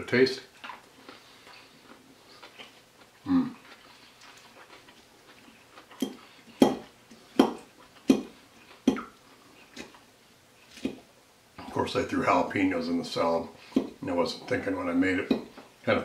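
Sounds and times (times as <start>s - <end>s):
person humming mmm: 3.2s - 3.6s.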